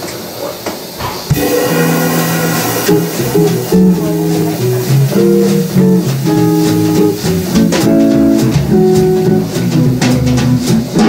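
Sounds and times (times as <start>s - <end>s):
room noise: 0.0s - 11.0s
jazz band playing: 1.3s - 11.0s.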